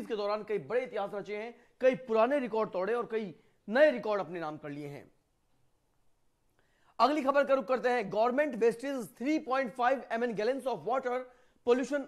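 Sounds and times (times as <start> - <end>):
person narrating: 0.0 - 5.2.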